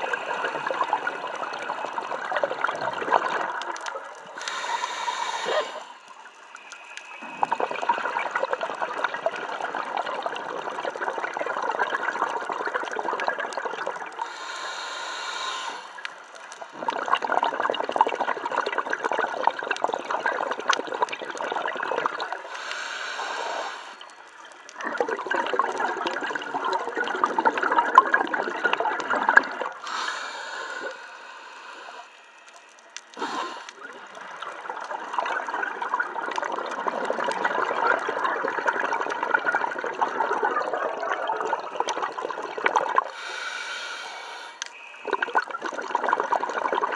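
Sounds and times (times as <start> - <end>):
exhaled bubbles gurgling: 0.0 - 46.9
regulator inhalation hiss: 4.3 - 7.2, 14.2 - 16.2, 22.5 - 24.3, 29.8 - 34.1, 43.0 - 44.8.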